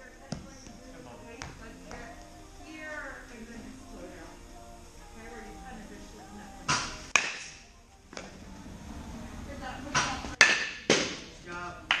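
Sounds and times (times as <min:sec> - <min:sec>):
baseball bat cracking balls: 0:06.7 - 0:08.3, 0:10.0 - 0:11.3
balls striking netting: 0:06.7 - 0:08.4, 0:09.9 - 0:12.0.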